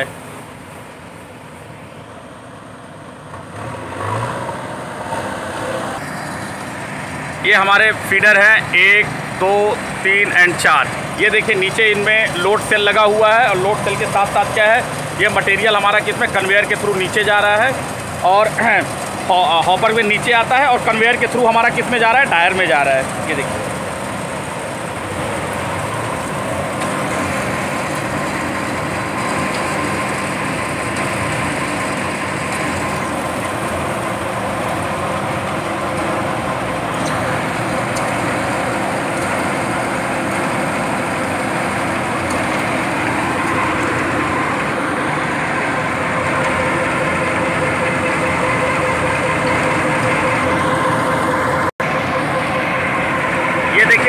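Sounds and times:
plant machinery running: 0:00.0 - 0:54.0.

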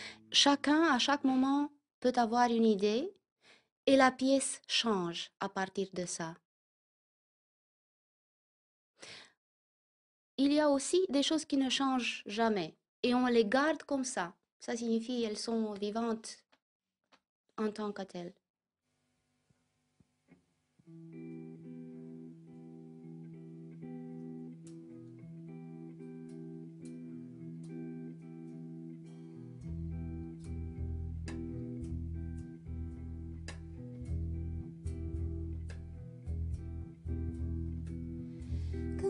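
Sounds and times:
plucked guitar: 0:20.8 - 0:39.0
double bass line: 0:29.5 - 0:39.0.

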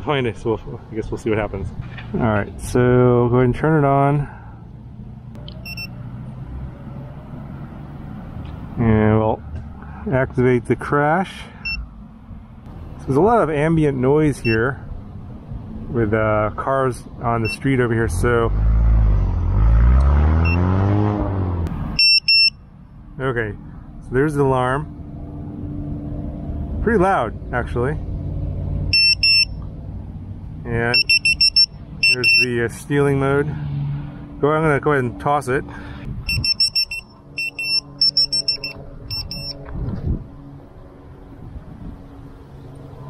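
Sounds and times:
faint short alarm beep: 0:05.6 - 0:06.0, 0:22.0 - 0:22.6, 0:29.0 - 0:29.5, 0:31.0 - 0:32.4, 0:36.3 - 0:39.6
car driving past: 0:05.7 - 0:10.1, 0:18.2 - 0:22.0, 0:33.3 - 0:34.4.

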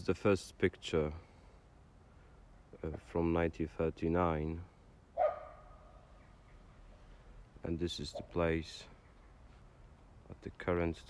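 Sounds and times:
dog barking: 0:05.2 - 0:05.8.

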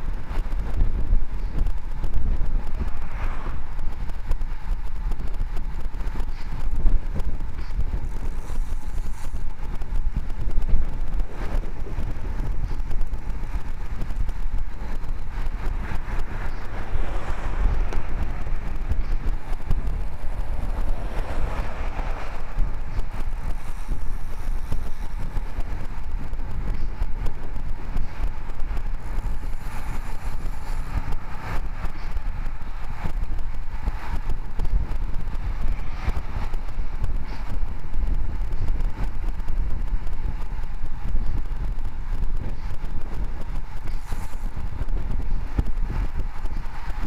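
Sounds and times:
passing motor vehicle: 0:00.0 - 0:47.0
wind buffeting microphone: 0:00.0 - 0:47.0.

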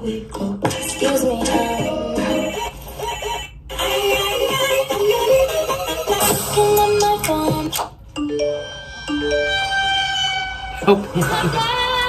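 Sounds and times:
music: 0:00.0 - 0:12.0
cell phone ringtone: 0:08.2 - 0:10.7.

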